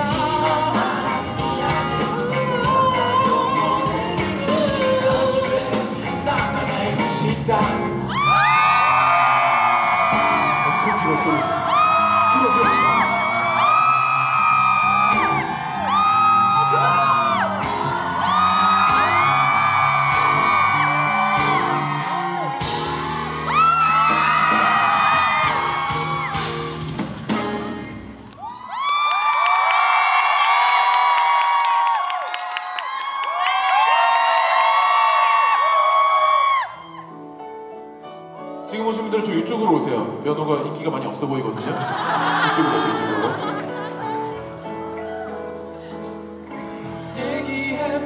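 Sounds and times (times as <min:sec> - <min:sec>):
pop-rock band playing: 0:00.0 - 0:28.3.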